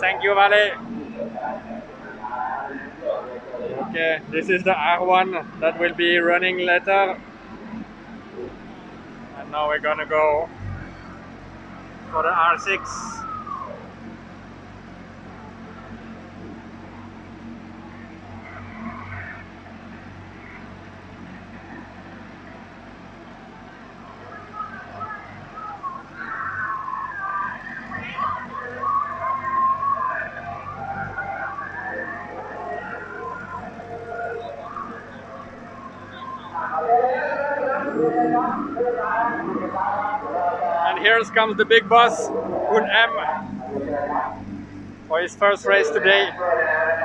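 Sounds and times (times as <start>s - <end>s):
background voices talking: 0.0s - 47.0s
low hum: 0.0s - 47.0s.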